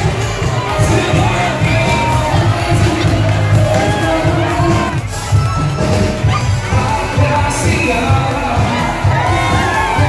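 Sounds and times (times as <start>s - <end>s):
live band music through speakers: 0.0s - 10.0s.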